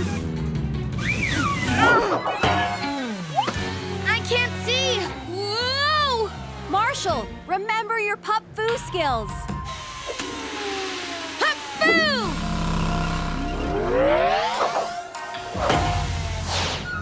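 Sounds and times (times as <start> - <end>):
cartoon background music: 0.0 - 17.0.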